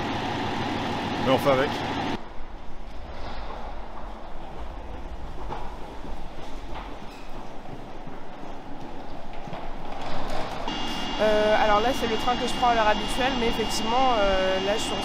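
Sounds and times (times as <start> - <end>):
train high whine: 0.0 - 5.6, 10.6 - 15.0
steady noisy rumble: 0.0 - 6.4
footsteps knocking: 3.9 - 10.4.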